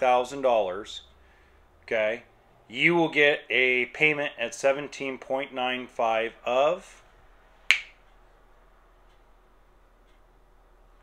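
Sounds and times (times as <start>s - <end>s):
sharp snap: 7.7s - 8.0s.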